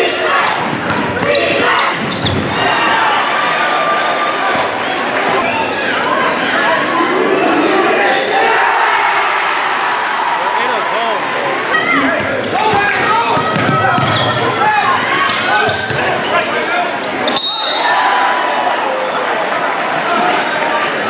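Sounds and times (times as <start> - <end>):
crowd and player voices: 0.0 - 21.0
sneakers squeaking on court: 0.9 - 2.6, 12.0 - 14.6, 15.2 - 16.5
basketball bouncing: 12.7 - 14.3.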